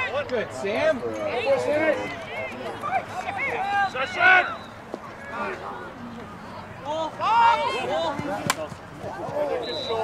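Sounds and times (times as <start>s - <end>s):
people shouting: 6.9s - 8.5s
lacrosse stick crack: 8.4s - 8.7s.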